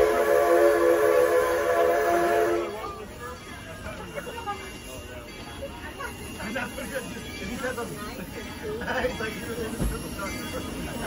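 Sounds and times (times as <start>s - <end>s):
steam locomotive whistle: 0.0s - 3.0s.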